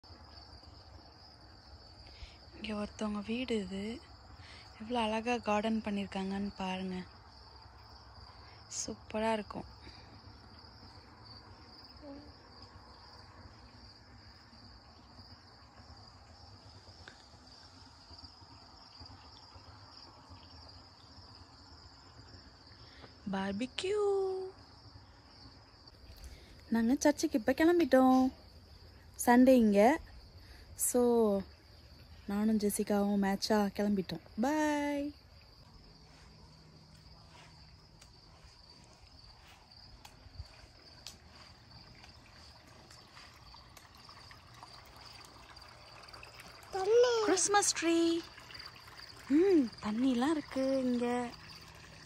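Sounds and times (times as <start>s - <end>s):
crickets chirping: 0.0s - 52.0s.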